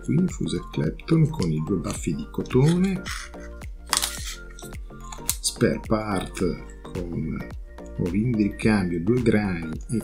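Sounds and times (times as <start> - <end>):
background music with beat: 0.0 - 10.0
plastic zip bag crinkling: 3.9 - 4.4.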